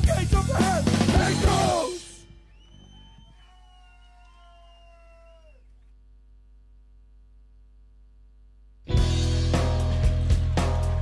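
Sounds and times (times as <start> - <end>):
loud band music: 0.0 - 2.2, 8.9 - 11.0.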